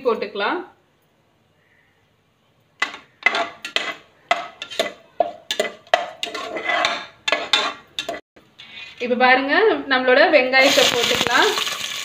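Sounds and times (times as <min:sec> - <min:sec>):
spoon scraping and clinking pot: 0:02.8 - 0:09.0
spices frying in oil: 0:10.6 - 0:12.0.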